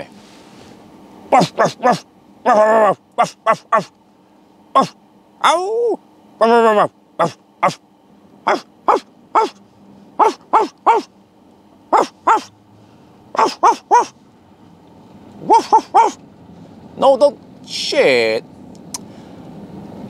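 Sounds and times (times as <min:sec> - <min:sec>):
low car hum: 0:00.0 - 0:20.0
man imitating dog barks: 0:01.3 - 0:03.9, 0:04.7 - 0:07.8, 0:08.4 - 0:09.6, 0:10.2 - 0:11.1, 0:11.9 - 0:12.5, 0:13.4 - 0:14.2, 0:15.4 - 0:16.2.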